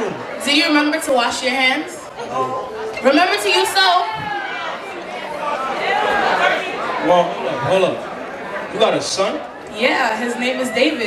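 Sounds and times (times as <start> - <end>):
people talking: 0.0 - 4.3, 8.8 - 11.0.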